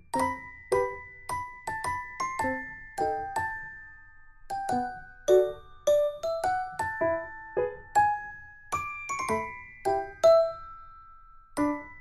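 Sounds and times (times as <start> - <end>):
bell-like melody: 0.0 - 12.0.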